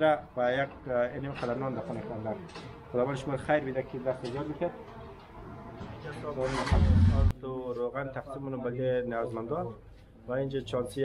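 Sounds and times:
rickshaw engine starting: 0:06.3 - 0:07.3.

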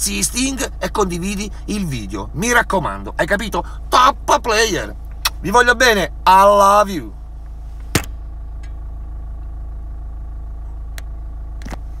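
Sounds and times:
car cabin engine and road rumble: 0:00.0 - 0:12.0.

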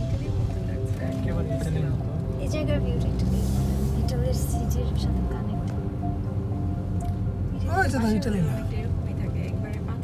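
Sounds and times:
background music: 0:00.0 - 0:10.0
car engine and road noise: 0:00.0 - 0:10.0.

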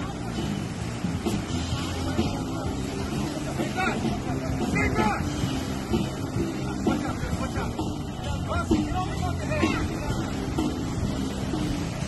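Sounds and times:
surf washing in: 0:00.0 - 0:12.0.

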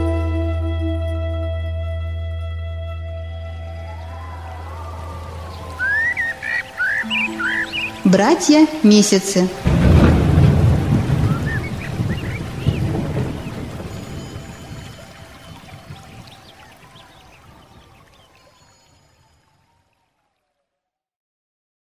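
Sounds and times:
faint music: 0:00.0 - 0:10.1
rain-like noise: 0:03.7 - 0:20.6
low thunder-like rumble: 0:09.6 - 0:16.3.

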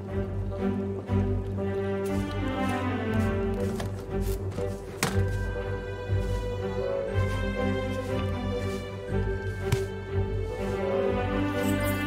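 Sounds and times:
slow ambient fantasy music: 0:00.0 - 0:12.0.

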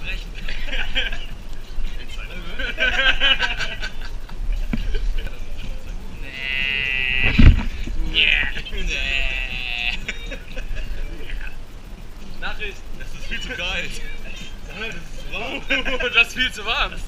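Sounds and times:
loud thump: 0:07.2 - 0:07.8.

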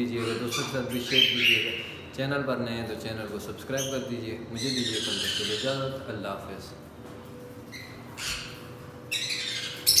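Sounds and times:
parrots squawking: 0:00.0 - 0:02.0, 0:04.6 - 0:05.8, 0:07.7 - 0:10.0.

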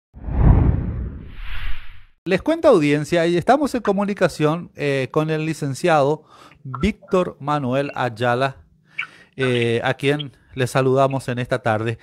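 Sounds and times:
deep whoosh: 0:00.2 - 0:02.1.

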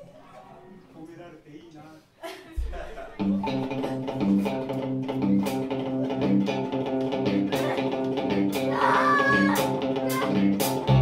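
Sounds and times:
live rock band playing: 0:03.2 - 0:11.0.

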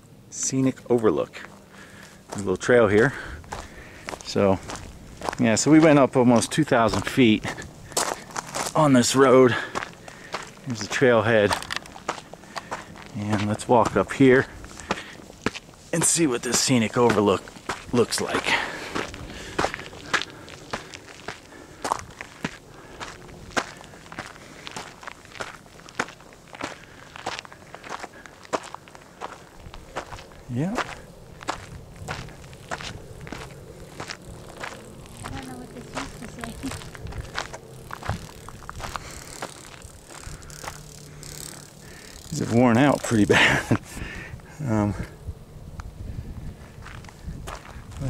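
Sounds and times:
footsteps on gravel trail: 0:00.7 - 0:44.2, 0:46.2 - 0:48.0.

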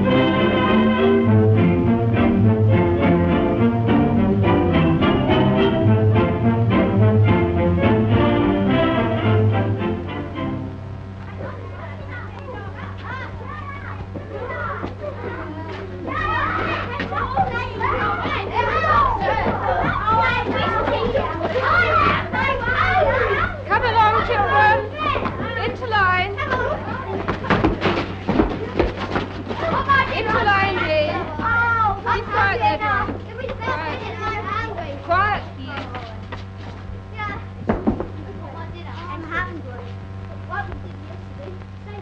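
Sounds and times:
steady low hum: 0:00.0 - 0:42.0
children shouting at play: 0:11.2 - 0:35.2.

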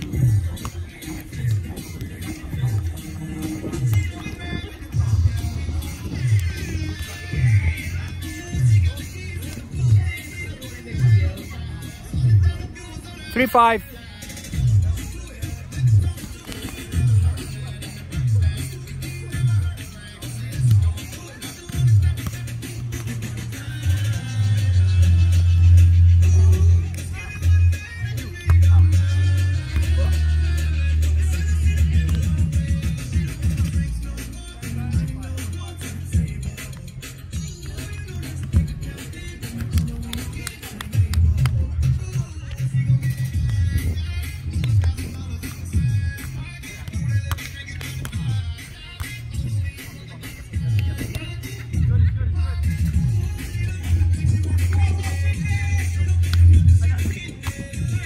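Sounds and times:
music with prominent bass: 0:00.0 - 0:58.0.

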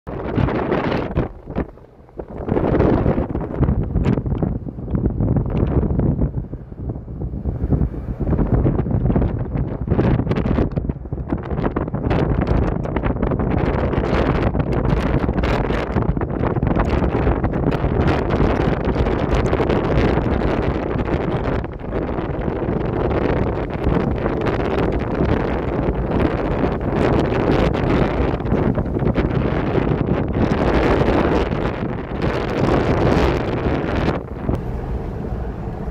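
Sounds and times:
wind buffeting microphone: 0:00.0 - 0:35.9.

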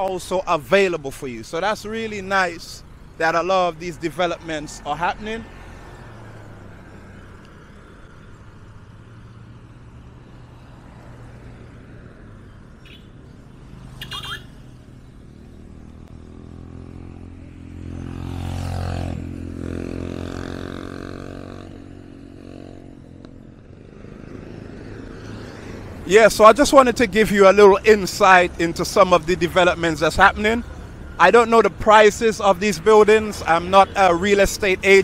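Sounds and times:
road traffic hum: 0:00.0 - 0:35.0
vehicle engine passing: 0:03.2 - 0:23.0.

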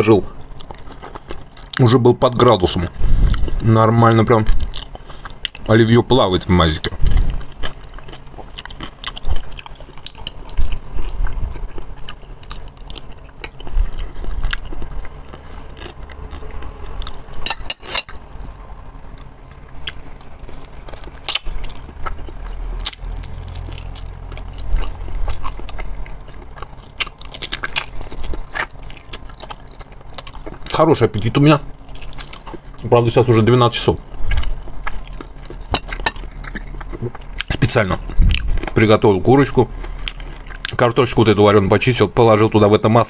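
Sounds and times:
man chewing with wet mouth sounds: 0:00.0 - 0:41.6.

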